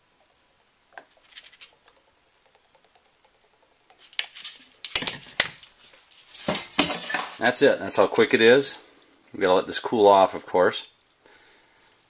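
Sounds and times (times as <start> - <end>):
spoon stirring in metal saucepan: 0.0 - 7.4.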